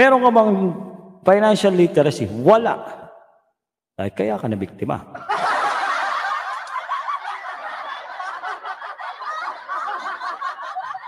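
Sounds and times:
tinny laughter: 5.3 - 11.0.

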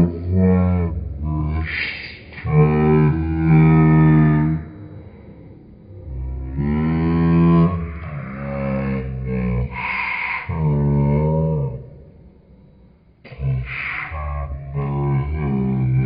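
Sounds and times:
low voice holding wordless tones: 0.0 - 16.0
breathy hiss: 1.2 - 6.8, 7.4 - 10.8.

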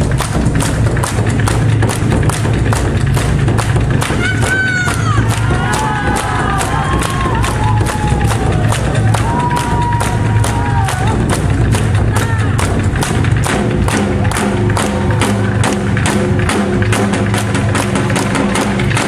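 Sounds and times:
drums beaten in steady rhythm: 0.0 - 19.0.

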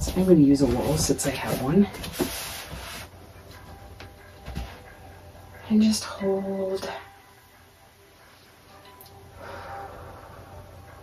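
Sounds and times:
clothing rubbing against wall: 0.0 - 3.2.

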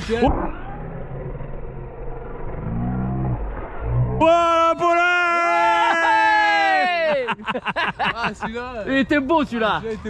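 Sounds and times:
man exclaiming: 4.2 - 7.4.

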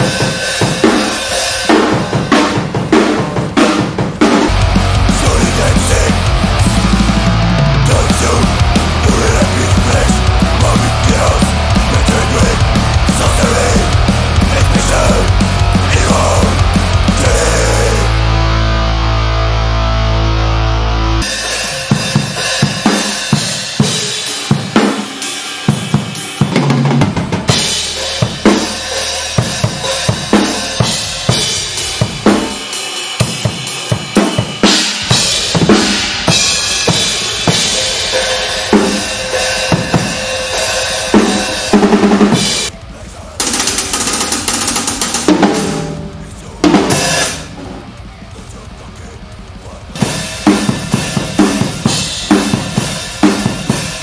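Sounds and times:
crashing cymbals: 0.0 - 20.0, 21.2 - 26.5, 27.2 - 54.0
bass drum strokes: 3.9 - 21.3.

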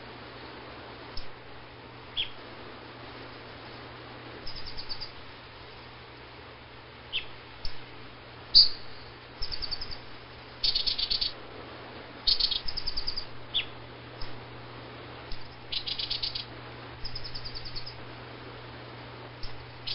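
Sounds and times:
faint low hum: 0.0 - 19.9
bird chattering chirps: 2.2 - 2.4, 4.4 - 5.2, 7.1 - 7.4, 8.5 - 11.4, 12.2 - 14.3, 15.3 - 18.0, 19.4 - 19.9.

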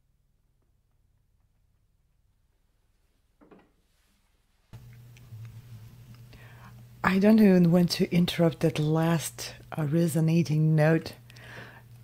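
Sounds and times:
faint low microphone hum: 4.7 - 12.0.

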